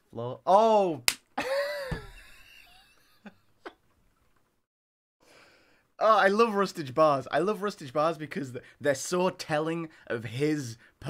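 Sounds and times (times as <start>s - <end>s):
man's laughing cry: 1.4s - 2.9s.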